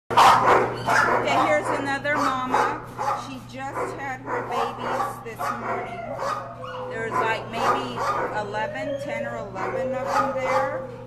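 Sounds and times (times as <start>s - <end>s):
dogs barking and yipping: 0.1s - 11.0s
steady low hum: 0.1s - 11.0s.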